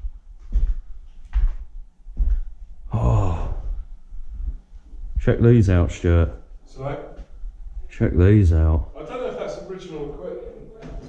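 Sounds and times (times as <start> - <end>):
person's wordless vocal sound: 2.9 - 3.9.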